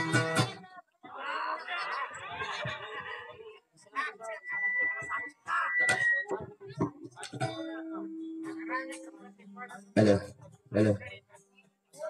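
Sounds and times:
person's high wavering voice: 10.0s - 11.0s.

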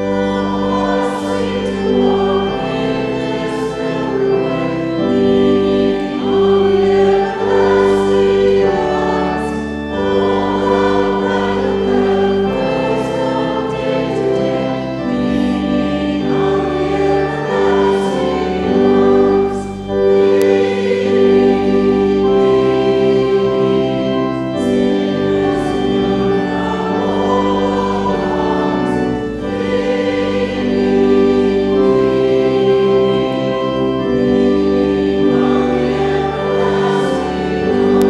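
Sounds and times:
congregation singing a hymn: 0.0s - 38.0s
organ: 0.0s - 38.0s.

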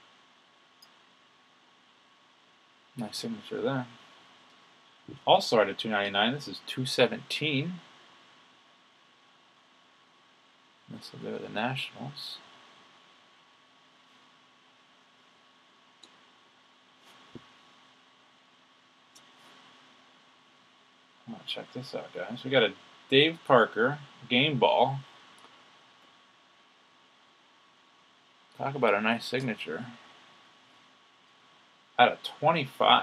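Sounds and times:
faint hum: 0.0s - 33.0s
faint room hiss: 0.0s - 33.0s.

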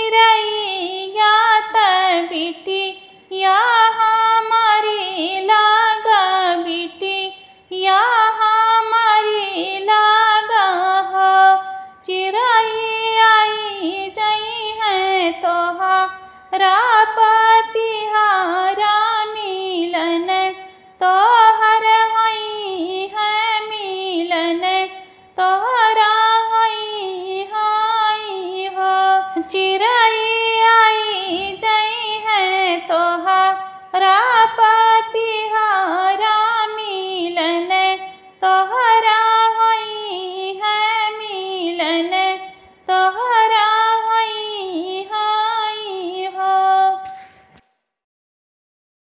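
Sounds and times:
woman singing folk song: 0.0s - 47.0s.

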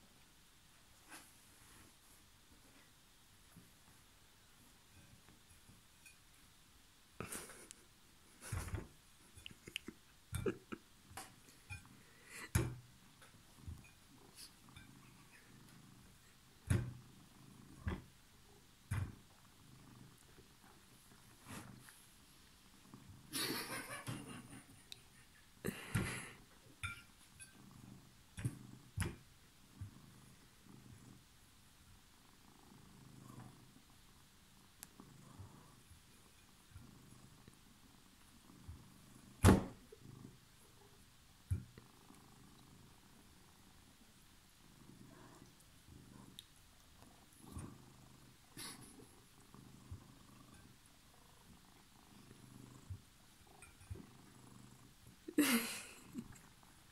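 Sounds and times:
cat purring: 0.0s - 56.9s.

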